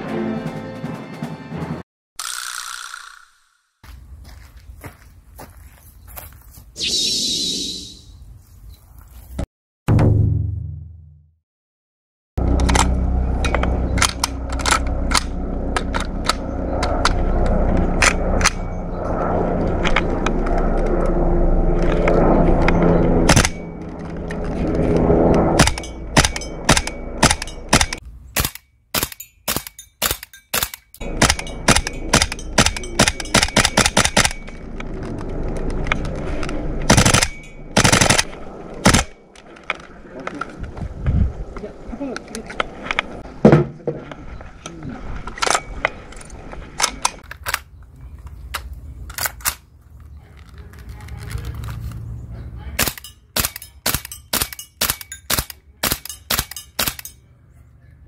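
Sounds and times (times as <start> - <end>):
airsoft rifle firing sharp shots: 25.6 - 34.4, 36.9 - 39.2.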